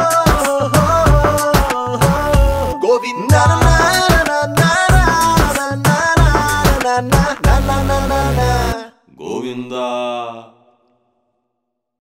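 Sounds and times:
film song with heavy beat: 0:00.0 - 0:08.8
person chanting: 0:00.0 - 0:11.0.

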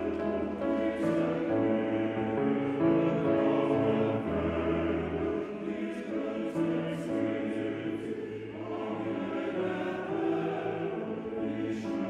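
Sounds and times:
male choir singing: 0:00.0 - 0:12.0.

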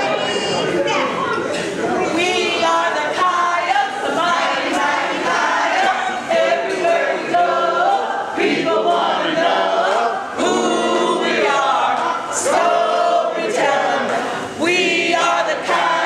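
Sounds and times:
women chanting in unison: 0:02.1 - 0:16.0.

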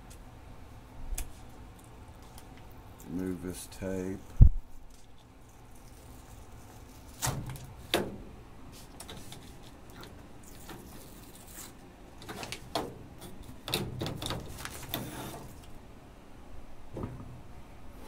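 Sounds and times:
paper rustling: 0:08.8 - 0:15.7.

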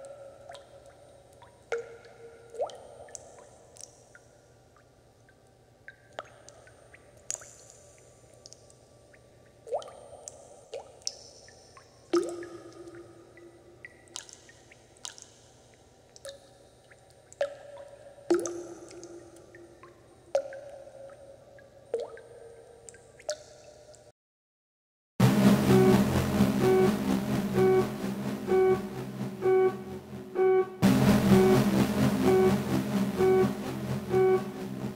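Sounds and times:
water drops plinking into water: 0:00.0 - 0:15.4, 0:16.1 - 0:24.1.

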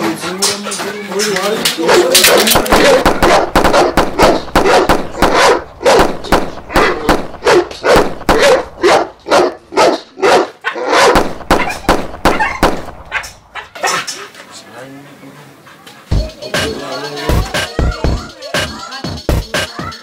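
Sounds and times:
dog barking: 0:01.8 - 0:14.1.

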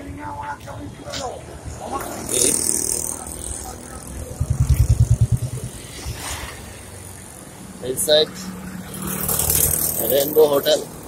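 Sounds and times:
road noise: 0:00.0 - 0:11.0
vehicle engine passing: 0:02.1 - 0:10.9.

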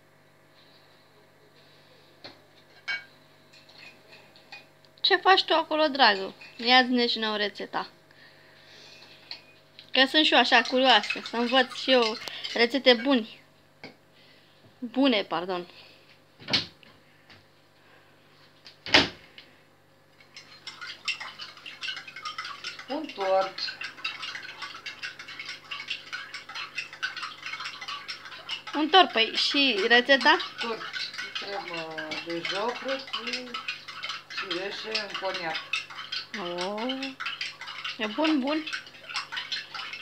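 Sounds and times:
person talking: 0:22.9 - 0:23.8, 0:28.8 - 0:33.6, 0:36.4 - 0:37.2.

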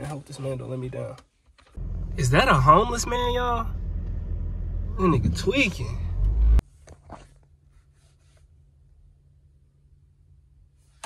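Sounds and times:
car rumble inside cabin: 0:01.8 - 0:06.6.

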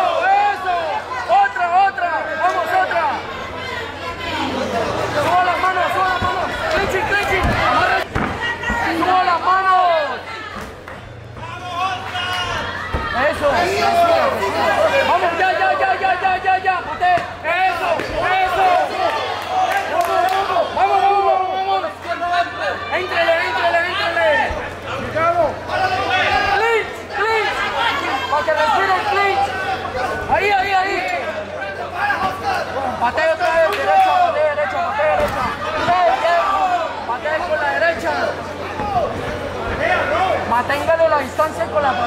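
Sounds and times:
people talking and shouting: 0:00.0 - 0:42.0.

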